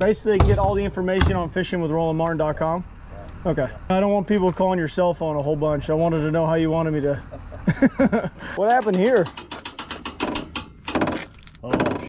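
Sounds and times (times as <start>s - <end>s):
metal chains rattling and clanking: 8.6s - 12.0s.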